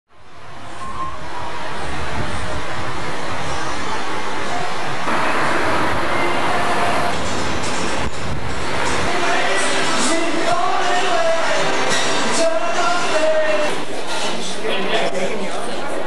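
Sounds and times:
traffic noise: 0:00.1 - 0:16.0
faint voices: 0:00.5 - 0:08.0, 0:08.7 - 0:16.0
music: 0:07.1 - 0:14.6.

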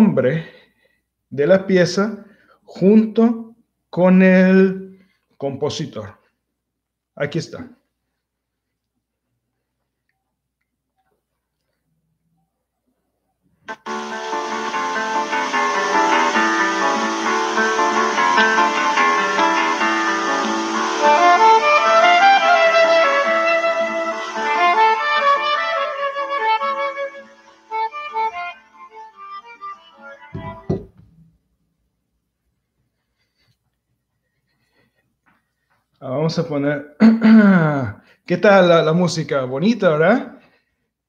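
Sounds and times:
flute and guitar music from a phone: 0:13.7 - 0:30.9
knock: 0:30.3 - 0:31.1.

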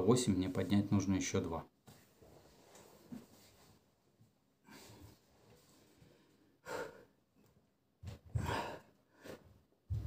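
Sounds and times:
man breathing hard with strain: 0:08.3 - 0:09.6.

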